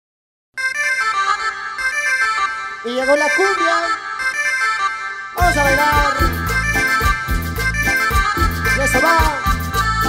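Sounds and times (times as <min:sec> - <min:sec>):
accordion melody: 0:00.6 - 0:10.0
bass and percussion beat: 0:05.4 - 0:10.0.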